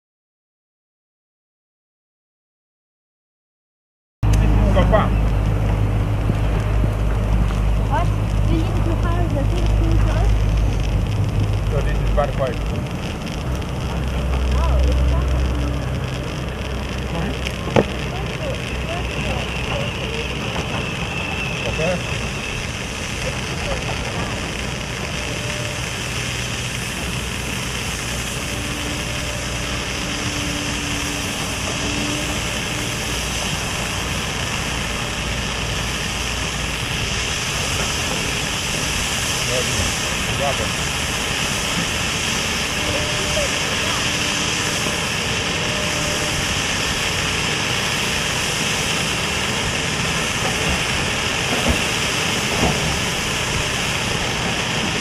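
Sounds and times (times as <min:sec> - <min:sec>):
firework fountain hissing: 0:04.2 - 0:55.0
sharp crackles: 0:04.2 - 0:55.0.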